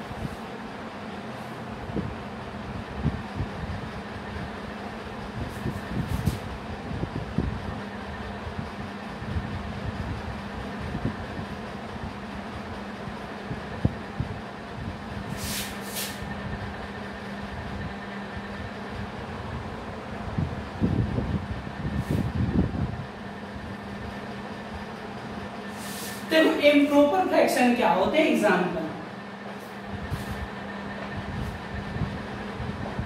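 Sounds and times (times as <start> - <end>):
steady low hum: 0.0 - 33.0.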